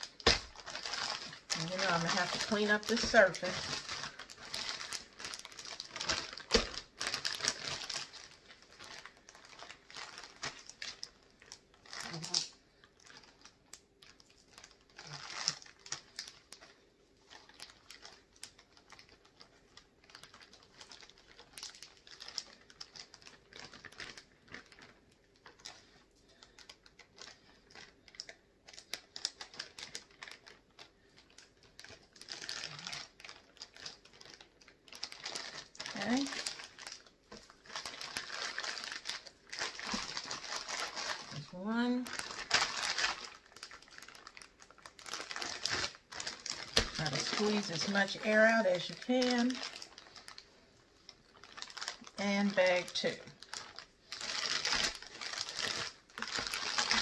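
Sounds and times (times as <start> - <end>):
plastic bags crinkling: 0.0 - 57.0.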